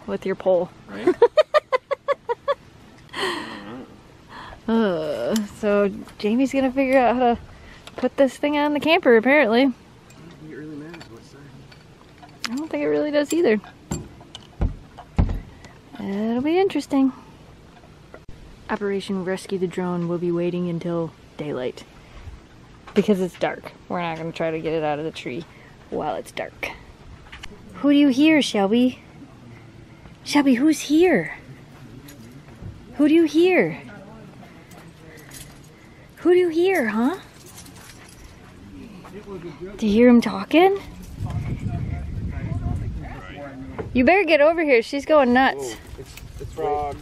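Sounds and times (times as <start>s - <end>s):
dull thumps against trailer wall: 13.9s - 15.5s
dog collar tags jingling: 34.6s - 38.8s, 45.6s - 47.0s.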